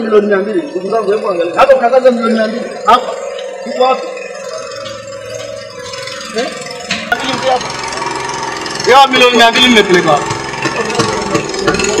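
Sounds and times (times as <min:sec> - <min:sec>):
small engine running: 0:00.0 - 0:12.0
voices: 0:00.0 - 0:12.0.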